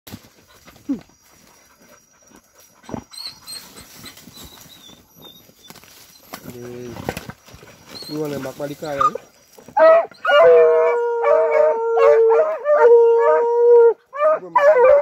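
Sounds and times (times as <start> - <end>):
dogs sniffing and scratching: 0.1 - 10.1
dog yelping: 9.8 - 13.4.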